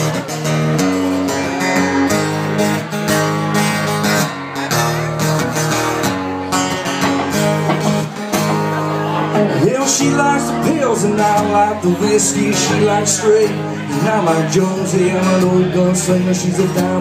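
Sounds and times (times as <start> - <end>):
guitar strumming: 0.0 - 17.0.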